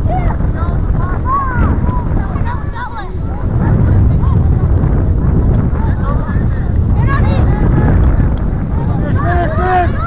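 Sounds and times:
distant shouts and calls: 0:00.0 - 0:10.0
wind buffeting microphone: 0:00.0 - 0:10.0.

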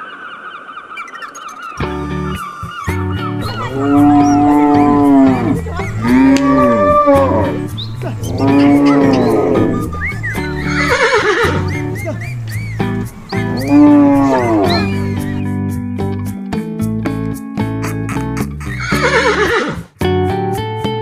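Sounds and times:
background guitar music: 0:01.8 - 0:21.0
cow mooing: 0:03.4 - 0:11.7, 0:13.4 - 0:15.2
horse whinny: 0:03.5 - 0:11.7, 0:13.5 - 0:15.2, 0:18.8 - 0:19.8.

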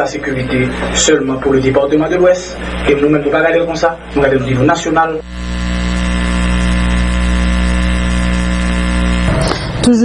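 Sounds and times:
loud electrical hum: 0:00.0 - 0:10.0.

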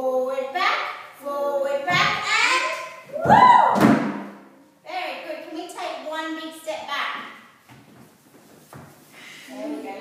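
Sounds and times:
loud thud: 0:03.2 - 0:04.4.

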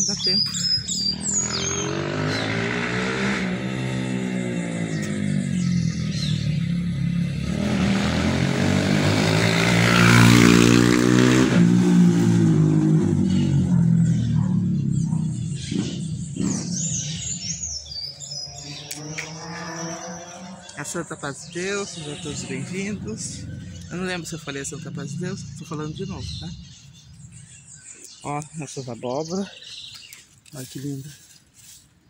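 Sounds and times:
vehicle passing slowly: 0:00.0 - 0:31.8
birds chirping: 0:00.0 - 0:32.0.

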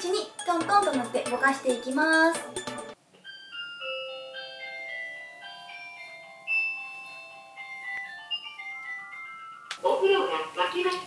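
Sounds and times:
electronic chime melody: 0:02.5 - 0:09.7.

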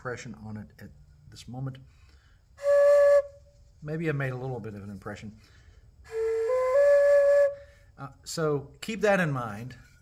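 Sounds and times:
breathy wooden flute note: 0:02.6 - 0:03.5, 0:06.0 - 0:07.9.

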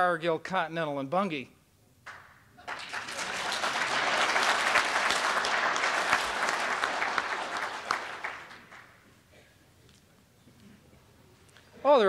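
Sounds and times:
audience applauding: 0:02.1 - 0:09.0.

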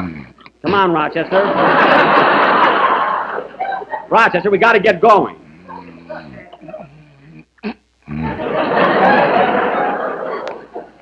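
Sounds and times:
studio audience laughing: 0:01.1 - 0:04.2, 0:08.2 - 0:11.0.

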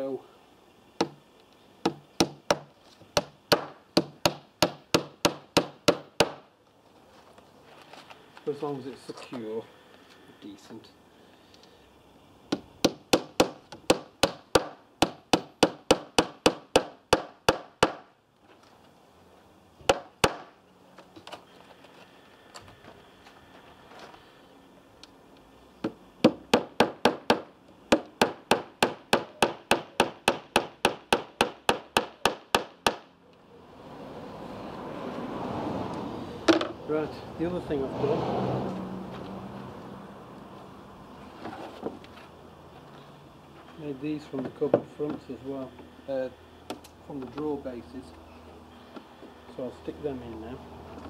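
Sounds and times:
hammer nailing into wood: 0:01.8 - 0:06.4, 0:12.5 - 0:18.1, 0:19.9 - 0:20.5, 0:25.8 - 0:33.1.

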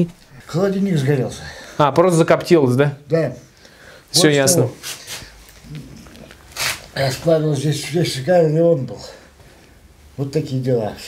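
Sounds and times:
person speaking: 0:00.0 - 0:09.3
breathy hiss: 0:03.5 - 0:04.2.

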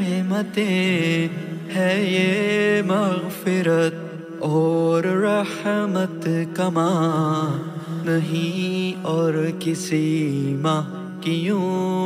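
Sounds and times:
person singing devotional song: 0:00.0 - 0:12.0.

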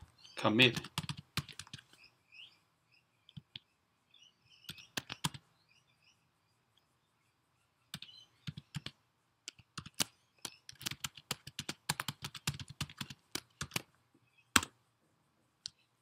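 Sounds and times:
typing on computer keyboard: 0:00.7 - 0:01.8, 0:04.7 - 0:05.4, 0:07.9 - 0:08.9, 0:09.5 - 0:13.9.

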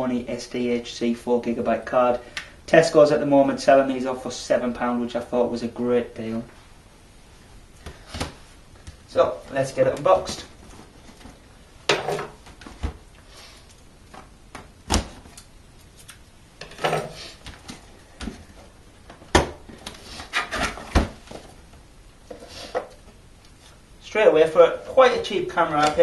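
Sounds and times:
cardboard rustling and scraping: 0:19.7 - 0:21.6.

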